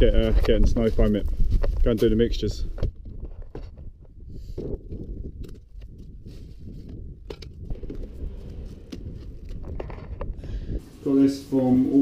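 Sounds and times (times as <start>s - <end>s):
steady low rumble: 3.9s - 12.0s.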